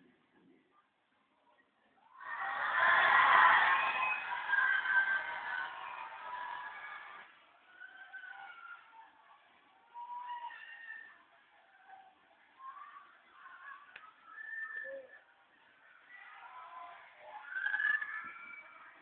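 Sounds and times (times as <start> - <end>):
crowd shouting and screaming: 2.0 - 9.2, 16.0 - 19.0.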